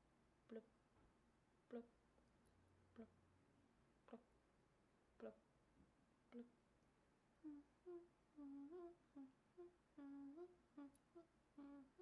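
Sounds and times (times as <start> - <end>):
woman humming: 1.7 - 1.9, 5.2 - 5.4, 6.3 - 6.6, 7.4 - 12.0.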